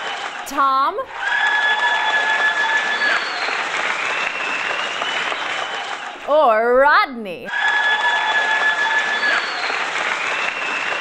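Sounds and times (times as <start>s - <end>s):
audience applauding: 0.0s - 6.2s, 7.5s - 11.0s
long steady whistles: 1.3s - 5.7s, 7.8s - 11.0s.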